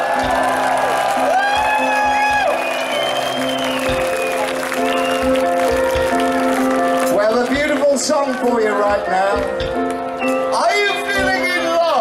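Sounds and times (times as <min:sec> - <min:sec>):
drums thumping: 0:00.0 - 0:02.8, 0:03.8 - 0:07.8, 0:08.8 - 0:10.4
audience clapping along: 0:00.0 - 0:11.4
live rock band playing: 0:00.0 - 0:12.0.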